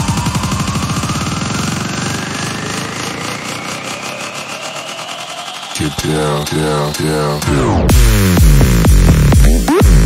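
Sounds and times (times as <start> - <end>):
fast stuttering pulse: 0.0 - 10.0
synth riser: 0.0 - 10.0
bass: 5.8 - 10.0
vocal sample: 5.8 - 10.0.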